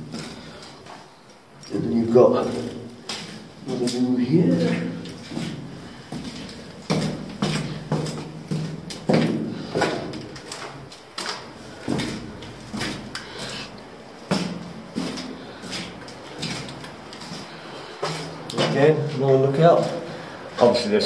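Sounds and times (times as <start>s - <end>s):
boot footsteps on concrete: 2.3s - 20.1s.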